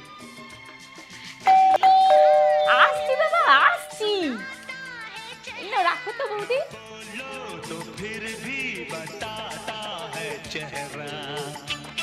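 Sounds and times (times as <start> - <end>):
electronic doorbell chime: 1.5 - 4.5.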